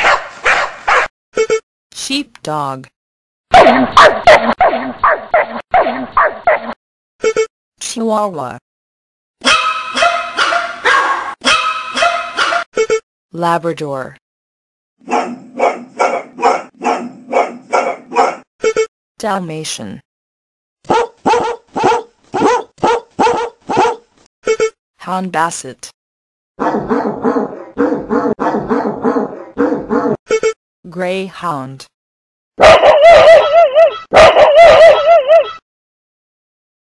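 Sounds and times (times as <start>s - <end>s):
small dog yapping: 10.0s - 11.4s, 20.9s - 24.0s
dog drawn-out wavering calls: 32.6s - 35.6s.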